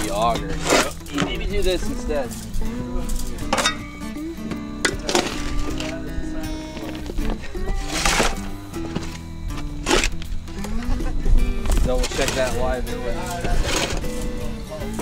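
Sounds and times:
background music: 0.0 - 15.0
post-hole digger striking soil: 3.5 - 6.0, 6.7 - 10.4, 11.6 - 15.0.

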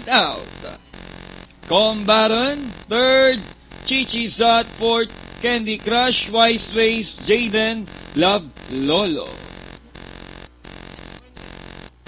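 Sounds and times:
electrical buzz: 0.0 - 12.0.

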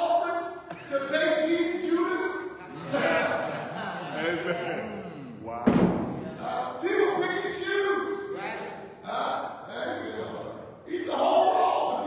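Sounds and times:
man preaching loudly: 0.0 - 3.3, 6.4 - 8.3, 9.1 - 12.0
hard thump: 5.6 - 6.2.

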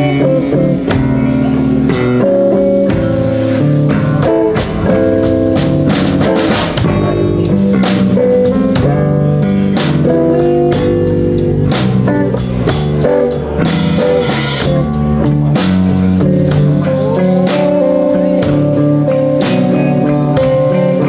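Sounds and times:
bass guitar: 0.0 - 21.0
drum kit beat: 0.0 - 21.0
electric guitars: 0.0 - 21.0.

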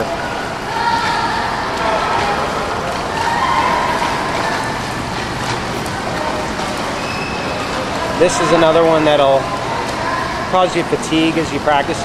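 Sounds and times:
distant echoing voices: 0.0 - 12.0
water splashing from swimming: 0.2 - 12.0.

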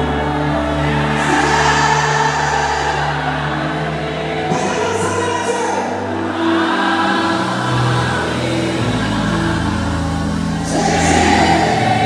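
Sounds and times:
large crowd noise: 0.0 - 12.0
live band holding a chord: 0.0 - 12.0.

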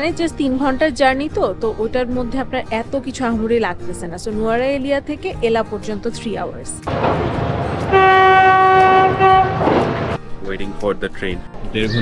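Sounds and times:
dense rushing noise: 6.9 - 10.2
train horn blast: 6.9 - 10.2.

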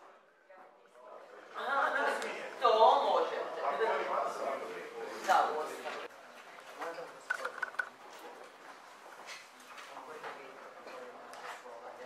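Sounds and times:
indistinct voices in conversation: 0.8 - 11.6.

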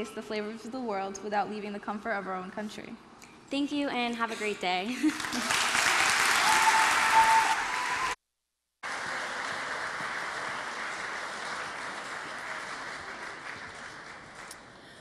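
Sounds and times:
audience applauding: 5.1 - 8.2, 8.8 - 14.9.

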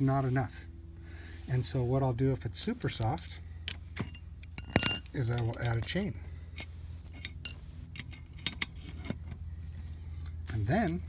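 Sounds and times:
steel chain clinking: 2.5 - 9.8
nail knocking on chain links: 4.0 - 6.0.

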